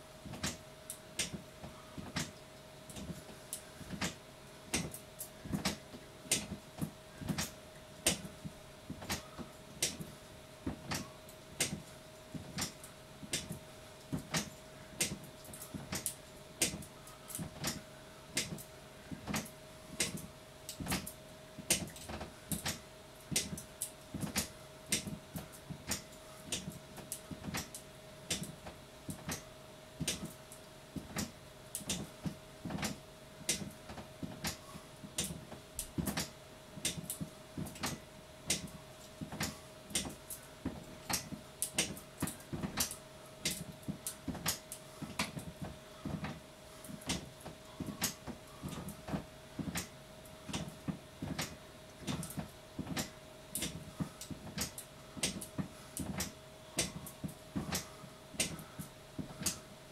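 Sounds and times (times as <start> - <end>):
stair stepper machine clicking: 0.2 - 1.4, 2.0 - 8.3, 8.9 - 30.3, 31.0 - 49.9, 50.5 - 59.7.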